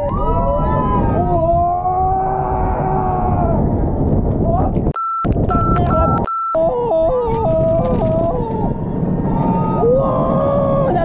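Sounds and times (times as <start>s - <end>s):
roller coaster riders screaming: 0.0s - 3.8s, 6.6s - 11.0s
wind rumble on microphone: 0.0s - 11.0s
short bleep tones: 5.0s - 6.6s.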